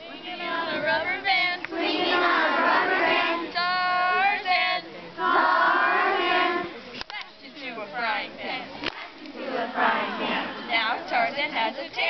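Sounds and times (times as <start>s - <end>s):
girls singing in unison: 0.0s - 6.7s, 7.6s - 12.0s.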